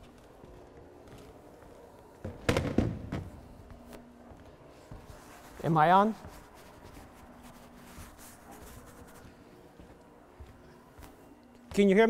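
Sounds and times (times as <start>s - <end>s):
faint rustling: 3.3s - 11.6s.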